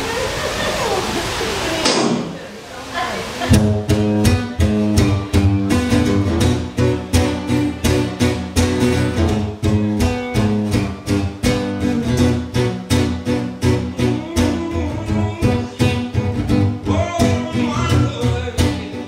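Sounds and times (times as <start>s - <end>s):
guitar strummed: 3.5s - 19.0s.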